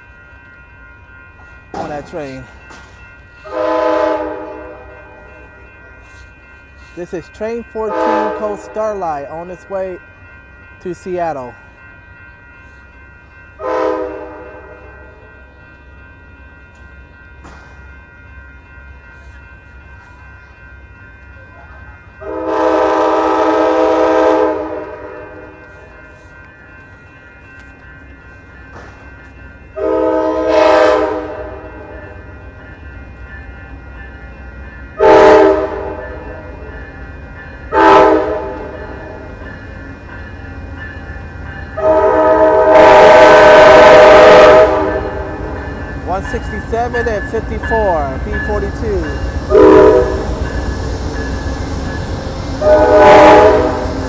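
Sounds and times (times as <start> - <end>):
locomotive air horn blasts: 3.5 - 4.9, 7.9 - 8.5, 13.6 - 14.5, 22.2 - 25.2, 29.8 - 31.6, 35.0 - 36.0, 37.7 - 38.7, 41.8 - 45.3, 49.5 - 50.2, 52.6 - 53.9.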